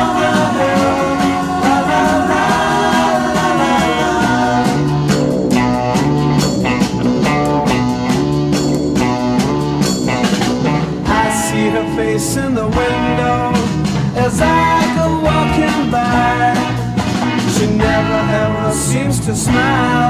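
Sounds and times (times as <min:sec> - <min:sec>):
person singing: 0:00.0 - 0:05.0, 0:11.1 - 0:16.9, 0:17.5 - 0:20.0
pop-rock band with guitar: 0:00.0 - 0:20.0.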